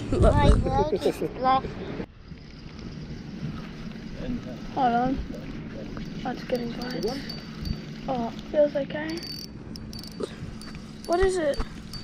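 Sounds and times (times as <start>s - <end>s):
insects chirping: 2.1s - 12.0s.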